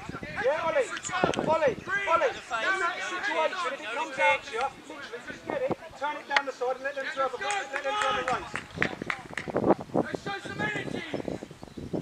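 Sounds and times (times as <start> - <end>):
distant shouting voices: 0.0 - 9.4.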